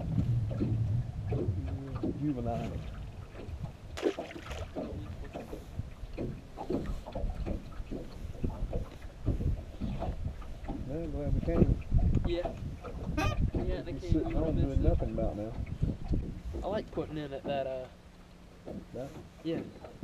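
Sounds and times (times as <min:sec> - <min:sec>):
water wash: 0:00.0 - 0:05.5
wind noise: 0:00.0 - 0:17.1
indistinct low talk: 0:01.3 - 0:03.0.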